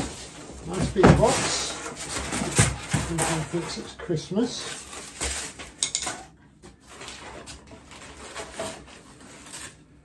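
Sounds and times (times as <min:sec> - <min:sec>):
cardboard and plastic rustling: 0:00.0 - 0:10.0.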